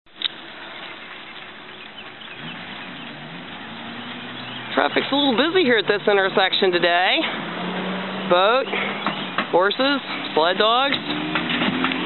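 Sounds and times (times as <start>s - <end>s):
road traffic noise: 0.1s - 12.0s
vehicle engine droning: 0.1s - 12.0s.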